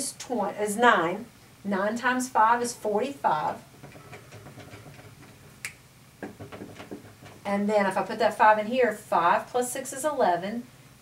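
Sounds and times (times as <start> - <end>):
marker clicking on whiteboard: 3.8 - 5.4, 6.2 - 7.5.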